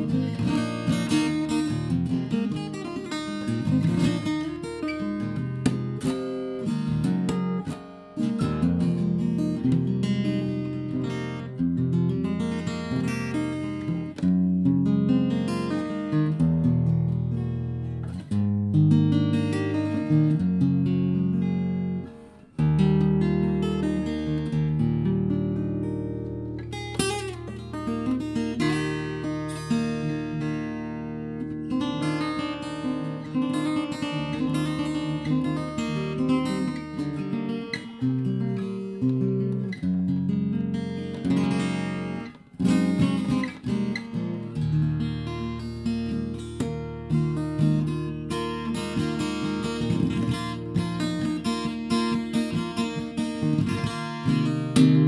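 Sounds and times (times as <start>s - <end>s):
acoustic guitar picking over drone: 0.0s - 55.0s.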